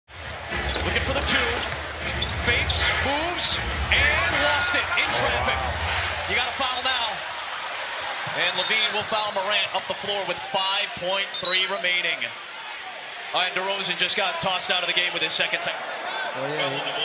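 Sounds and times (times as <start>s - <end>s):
arena crowd rumble: 0.1s - 17.0s
sneakers squeaking: 0.2s - 2.5s, 8.1s - 9.2s, 11.2s - 11.8s.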